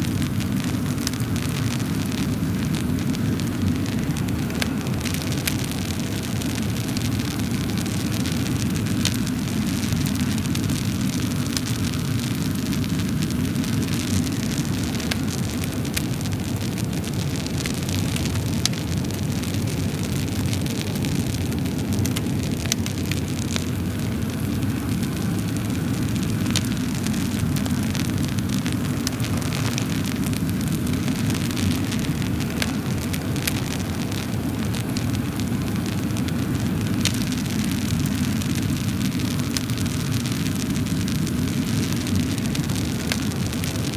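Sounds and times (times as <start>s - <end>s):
fire crackling and popping: 0.0s - 43.9s
wood fire burning: 0.0s - 43.9s.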